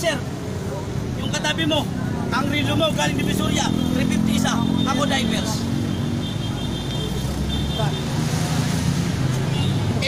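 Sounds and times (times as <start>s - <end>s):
traffic rumble on busy road: 0.0s - 10.0s.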